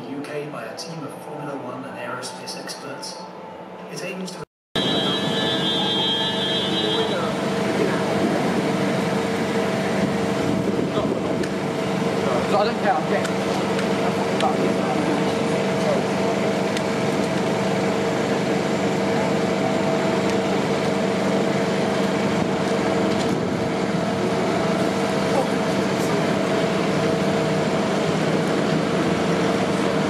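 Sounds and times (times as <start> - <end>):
traffic drone: 0.0 - 30.0
passers-by's voices: 3.8 - 30.0.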